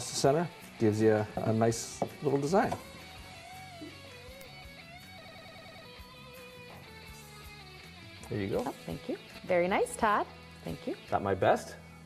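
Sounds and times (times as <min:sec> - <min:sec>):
guitar melody: 0:00.7 - 0:11.4.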